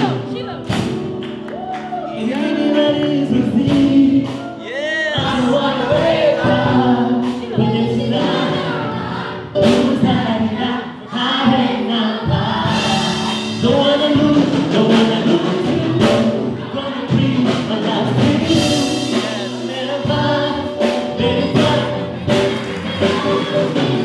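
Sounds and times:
man singing into microphone: 0:02.0 - 0:08.2, 0:09.6 - 0:22.5
group of voices singing along: 0:02.2 - 0:24.0.

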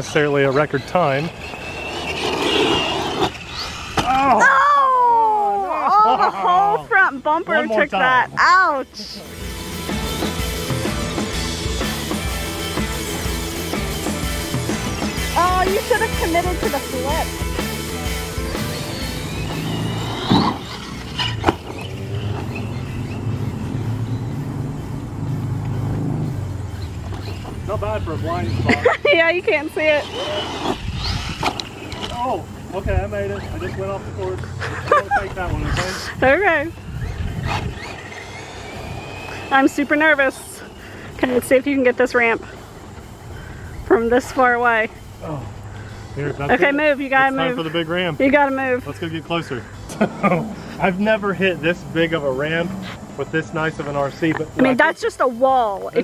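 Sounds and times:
tyres on loose dirt: 0:00.0 - 0:04.6, 0:09.2 - 0:56.0
electric rc car whirring: 0:00.0 - 0:05.8, 0:06.9 - 0:56.0
drawn-out vocal exclamation: 0:04.0 - 0:06.8
electric motor whining: 0:07.9 - 0:28.6, 0:29.4 - 0:54.9.

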